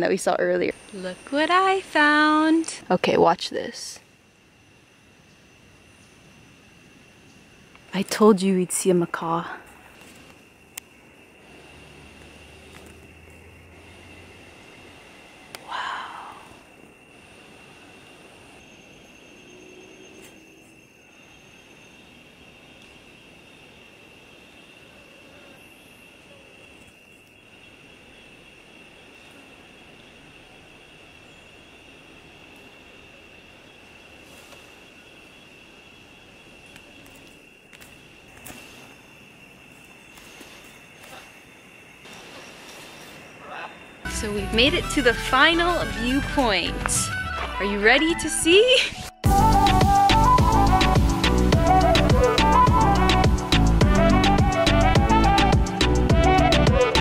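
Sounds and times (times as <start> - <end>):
high-pitched drone: 44.1 - 57.0.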